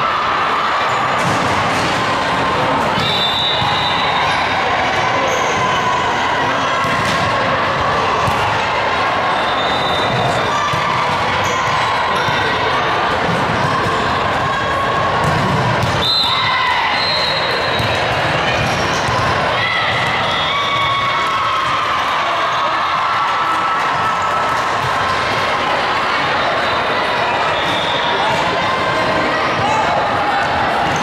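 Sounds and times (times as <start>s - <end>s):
balls struck and bouncing: 8.2s - 8.6s, 15.2s - 16.0s.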